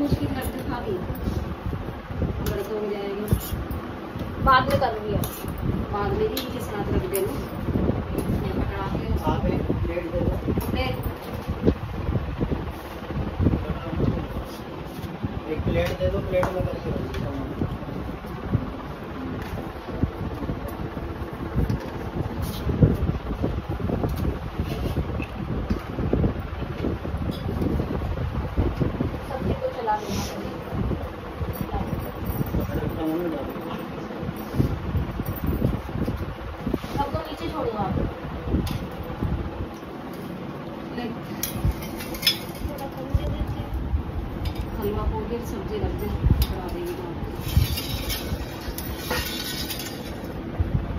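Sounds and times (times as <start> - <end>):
wind rumble on microphone: 0.0 - 33.5, 34.2 - 39.8, 41.0 - 50.9
steady background hum: 0.0 - 50.9.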